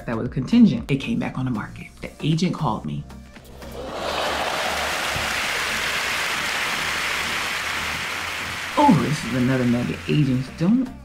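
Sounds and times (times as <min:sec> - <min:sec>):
large crowd applauding: 0:03.5 - 0:10.6.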